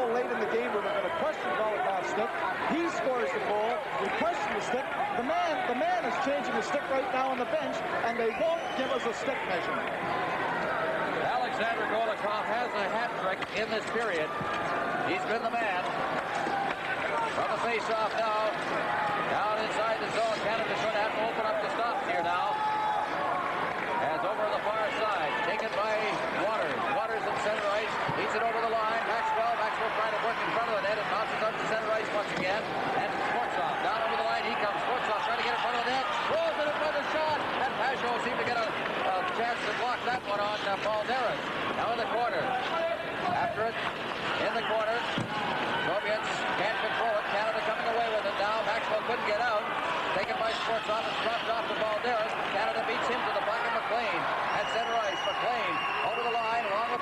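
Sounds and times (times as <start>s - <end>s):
crowd shouting and cheering: 0.0s - 57.0s.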